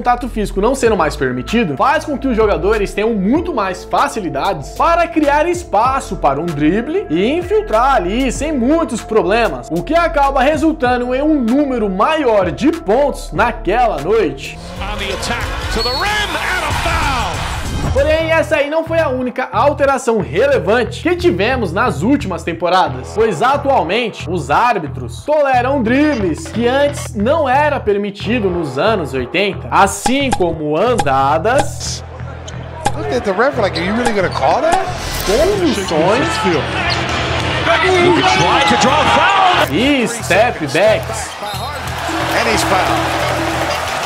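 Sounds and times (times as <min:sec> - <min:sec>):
commentator speaking: 0:00.0 - 0:17.4, 0:18.0 - 0:32.0, 0:32.8 - 0:36.8, 0:37.6 - 0:43.9
background music: 0:00.0 - 0:44.0
arena crowd noise: 0:15.0 - 0:17.4, 0:32.0 - 0:34.7, 0:35.5 - 0:44.0.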